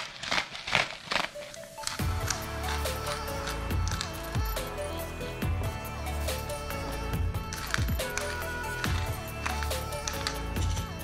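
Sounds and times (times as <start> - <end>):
shakers rattling: 0.0 - 4.8, 7.4 - 11.0
background music with bass: 2.0 - 11.0.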